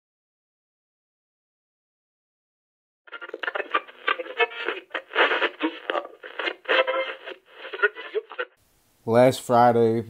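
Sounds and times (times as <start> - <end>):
choppy radio voice bursts: 3.1 - 8.6
music: 3.1 - 8.6.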